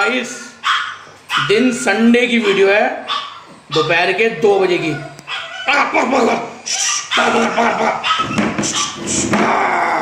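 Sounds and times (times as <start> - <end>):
dog barking: 0.6 - 4.0, 4.8 - 5.7, 6.8 - 9.2.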